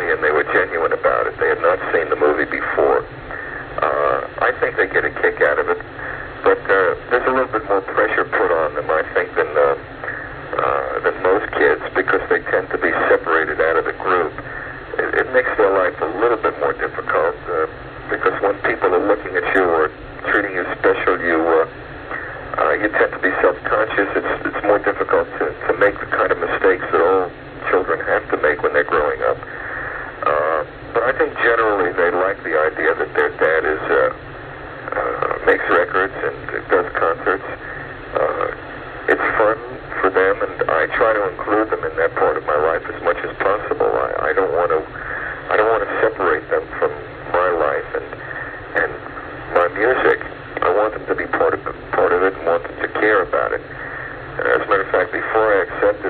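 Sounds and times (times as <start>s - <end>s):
man talking over telephone: 0.0s - 34.2s, 34.8s - 56.0s.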